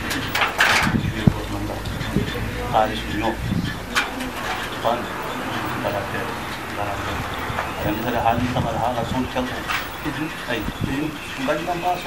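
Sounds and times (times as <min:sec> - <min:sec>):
bird calling: 0:00.0 - 0:12.0
man speaking: 0:01.0 - 0:03.6, 0:04.8 - 0:12.0.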